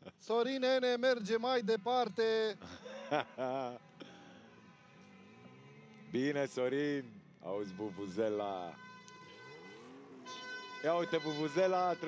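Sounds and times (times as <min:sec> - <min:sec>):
vuvuzela horn note: 0:07.6 - 0:12.0.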